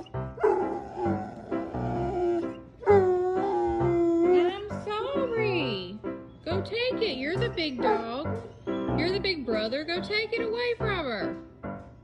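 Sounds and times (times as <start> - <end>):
dog whining: 0.0 - 4.7, 7.8 - 8.8
background music: 0.0 - 12.0.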